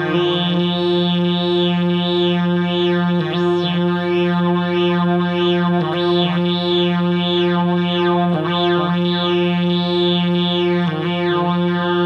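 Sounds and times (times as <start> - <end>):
buzzy synthesizer drone: 0.0 - 12.0.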